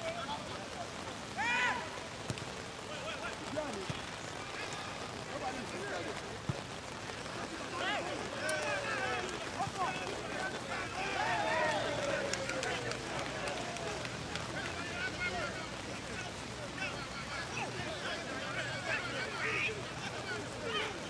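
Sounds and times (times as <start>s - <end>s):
open-air hiss: 0.0s - 21.0s
players and spectators shouting: 1.3s - 6.2s, 7.0s - 21.0s.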